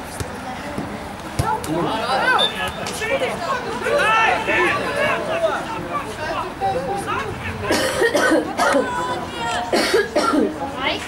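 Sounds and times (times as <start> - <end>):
people talking: 0.1 - 11.0.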